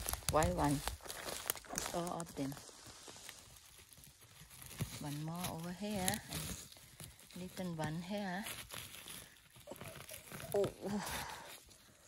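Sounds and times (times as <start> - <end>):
rustling through grass and pine needles: 0.0 - 12.0.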